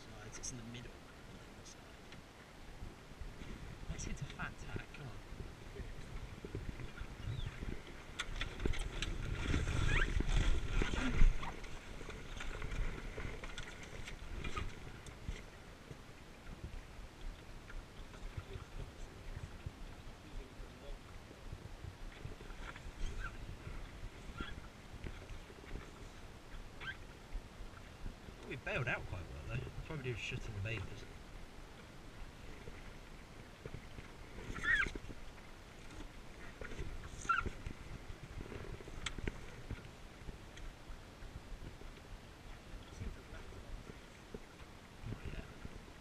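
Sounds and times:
water against boat hull: 0.0 - 46.0
wind buffeting microphone: 2.7 - 13.4, 18.2 - 26.5.

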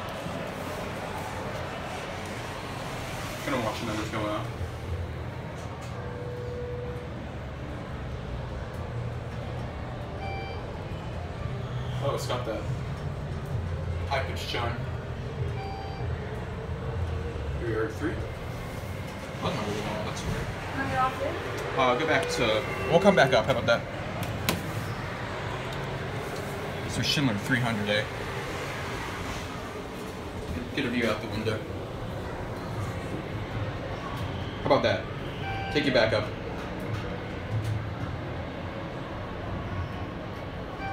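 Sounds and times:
elevator humming: 0.0 - 40.9
elevator chime: 10.2 - 10.7, 15.5 - 16.2, 35.4 - 36.0.

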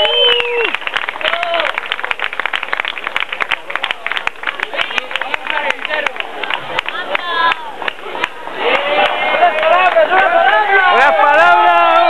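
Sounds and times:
crowd clapping: 0.0 - 12.0
crowd talking: 0.0 - 12.0
many voices shouting together: 8.4 - 12.0.

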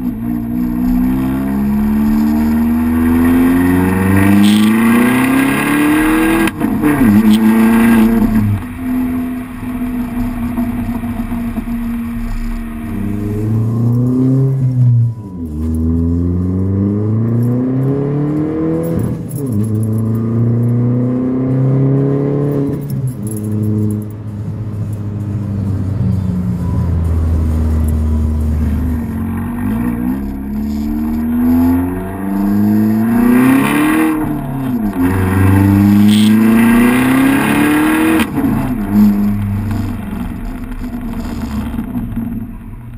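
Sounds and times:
car exhaust accelerating through gears: 0.0 - 42.9.

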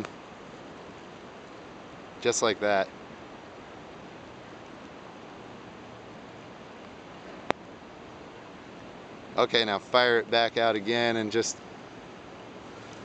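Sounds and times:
river hiss: 0.0 - 13.0.

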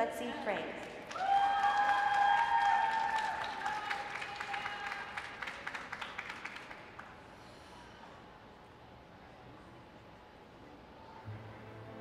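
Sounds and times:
audience applauding: 0.8 - 7.1
high held cheers: 1.1 - 5.4.

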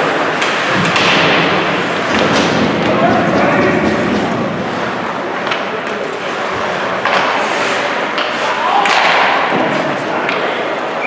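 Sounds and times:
puck and sticks knocking boards: 0.3 - 10.6.

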